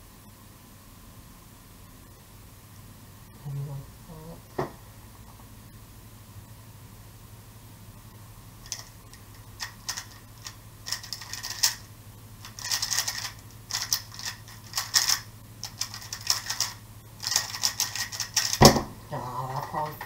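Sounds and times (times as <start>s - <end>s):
rapid clicking of puzzle cube: 8.6s - 18.8s.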